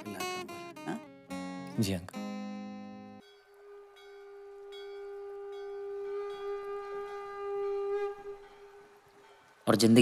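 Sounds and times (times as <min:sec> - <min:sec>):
film music long held note: 0:00.0 - 0:10.0.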